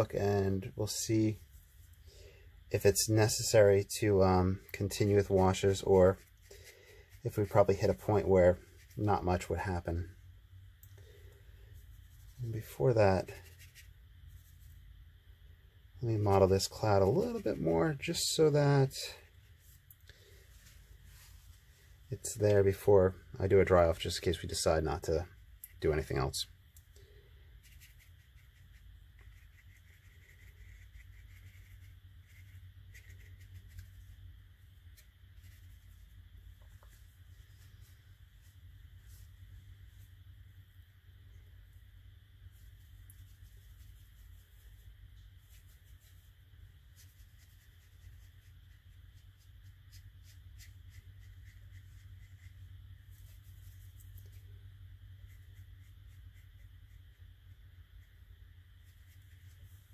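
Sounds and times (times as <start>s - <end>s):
steady low hum: 0.0s - 59.9s
brush scratching on paper: 4.8s - 10.1s, 11.0s - 15.0s, 27.0s - 40.2s, 42.4s - 59.9s.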